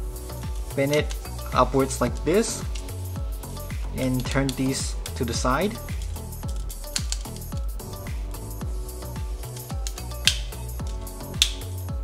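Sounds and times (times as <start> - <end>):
music with gliding bass beat: 0.0 - 12.0
sharp clicks: 6.0 - 7.5, 9.6 - 11.7.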